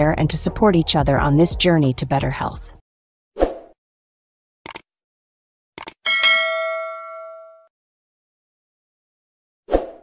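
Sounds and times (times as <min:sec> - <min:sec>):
notification bell ding: 0:06.1 - 0:07.7.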